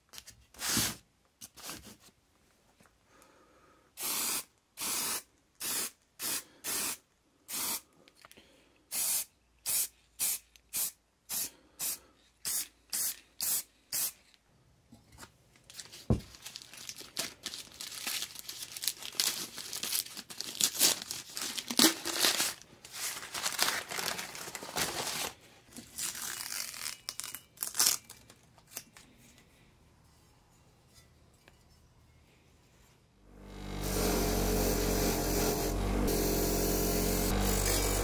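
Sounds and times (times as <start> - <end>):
spray paint can hissing: 4.0 - 7.8, 8.9 - 14.2
paper and tape tearing: 16.6 - 28.8.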